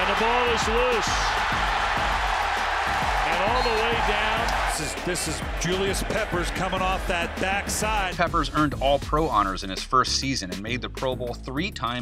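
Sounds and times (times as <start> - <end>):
stadium crowd: 0.0 - 8.3
background music with bass beat: 0.0 - 12.0.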